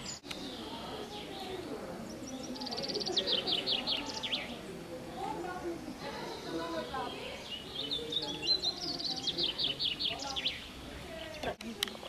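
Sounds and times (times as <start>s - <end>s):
faint voices: 0.0s - 12.0s
songbird chirping: 0.0s - 12.0s.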